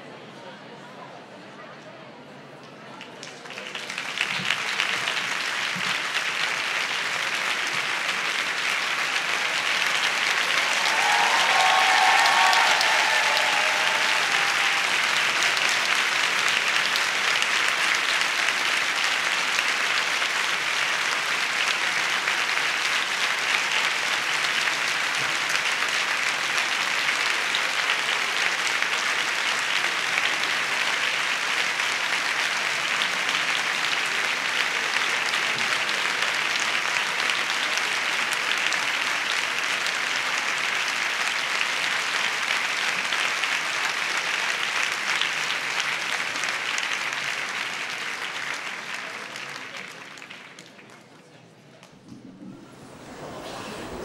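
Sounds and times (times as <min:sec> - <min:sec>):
audience applauding: 0:03.2 - 0:54.0.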